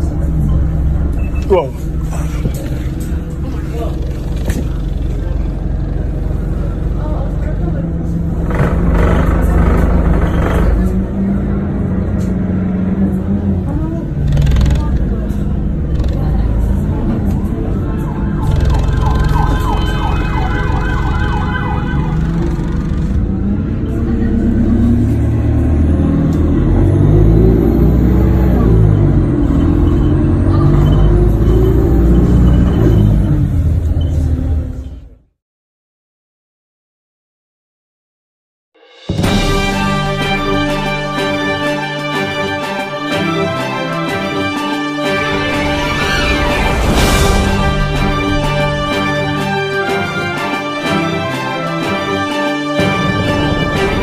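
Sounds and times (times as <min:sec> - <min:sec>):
indistinct voices: 0:00.0 - 0:35.2
traffic rumble: 0:00.0 - 0:35.3
emergency siren: 0:16.9 - 0:23.5, 0:26.0 - 0:33.8
pulsing siren-like tone: 0:17.1 - 0:23.2, 0:27.1 - 0:33.6.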